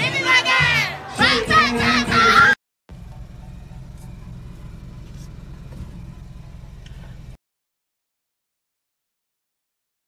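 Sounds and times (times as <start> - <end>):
car cabin engine and road rumble: 2.9 - 7.4.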